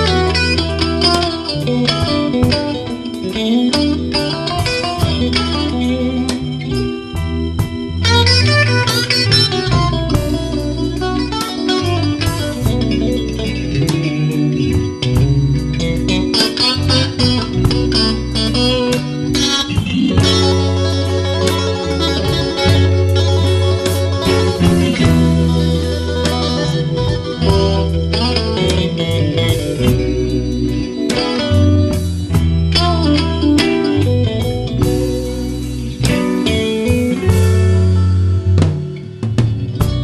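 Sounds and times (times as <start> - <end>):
drums: 0.0 - 40.0
electric guitars: 0.0 - 40.0
organ: 0.0 - 40.0.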